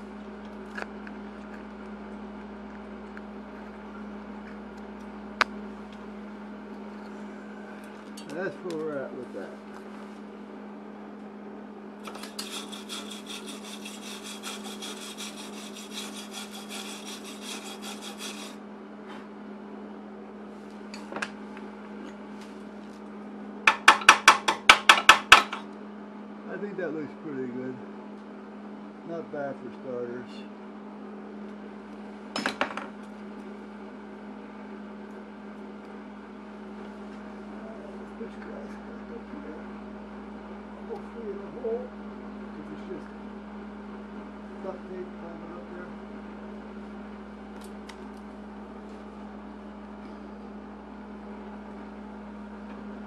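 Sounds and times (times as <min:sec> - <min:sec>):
steady low hum: 0:00.0 - 0:53.0
sharp knocks on metal: 0:23.7 - 0:25.6.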